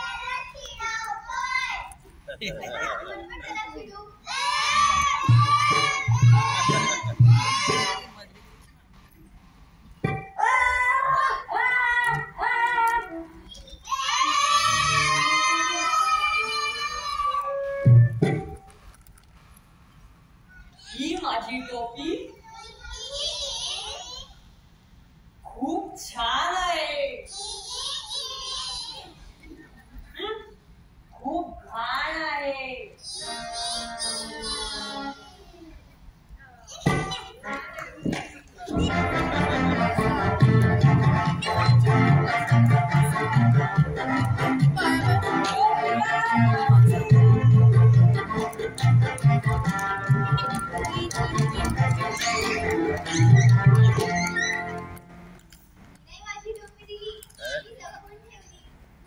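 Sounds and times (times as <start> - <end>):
voice: 0.0 - 4.2, 50.6 - 54.7, 56.1 - 58.6
child singing long notes: 33.0 - 35.6.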